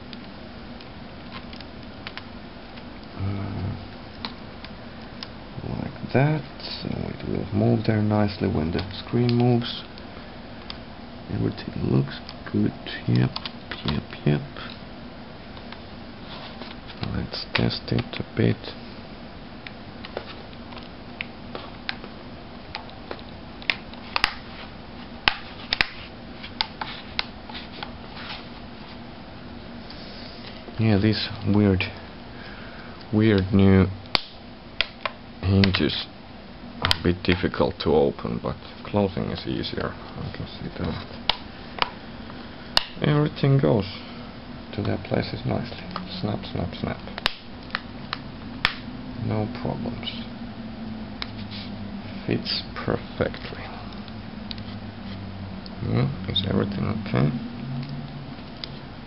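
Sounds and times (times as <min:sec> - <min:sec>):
low hum: 0:00.0 - 0:59.0
steady background hiss: 0:00.0 - 0:59.0.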